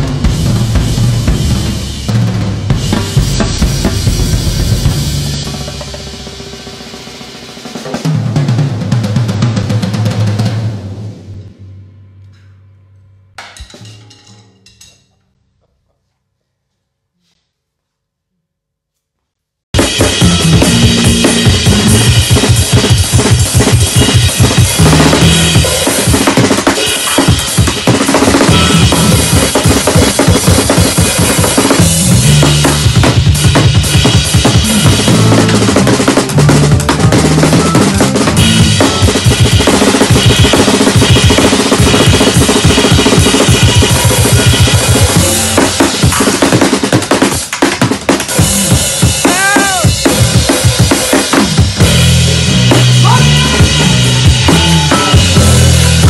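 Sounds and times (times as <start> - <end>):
drum kit playing busy patterns: 0.0 - 11.6, 13.4 - 14.9, 19.7 - 56.0
upright bass walking: 34.5 - 40.0.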